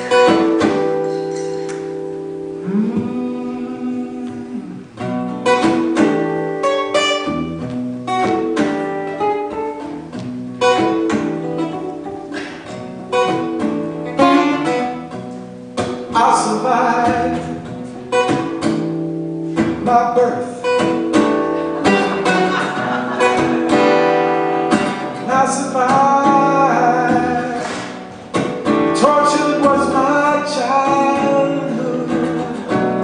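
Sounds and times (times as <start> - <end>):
acoustic guitar playing: 0.0 - 33.0.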